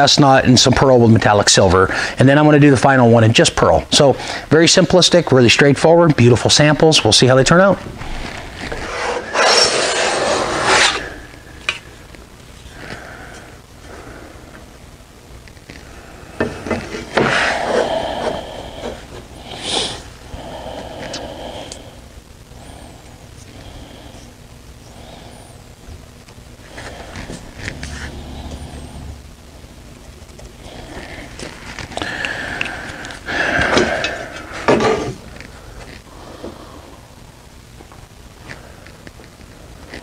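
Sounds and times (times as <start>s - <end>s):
marker drawing a line: 8.8s - 11.0s.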